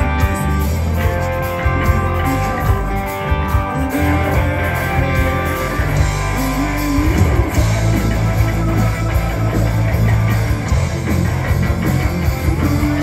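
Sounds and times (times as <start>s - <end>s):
person singing: 0.0s - 10.7s
live rock band: 0.0s - 13.0s.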